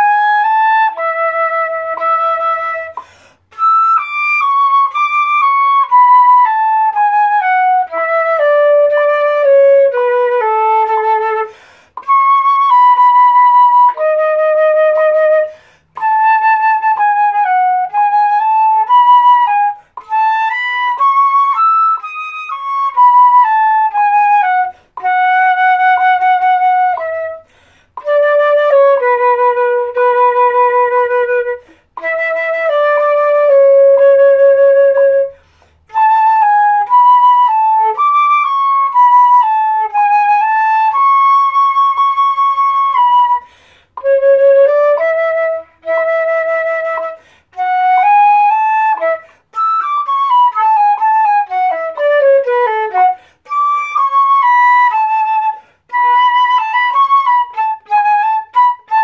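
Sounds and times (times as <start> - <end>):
solo flute playing: 0.0 - 59.0.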